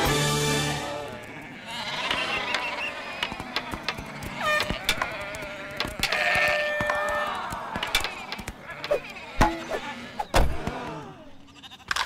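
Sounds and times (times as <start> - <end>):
cartoon sheep bleating: 0.6 - 12.0
hockey sticks hitting ball: 2.3 - 9.8.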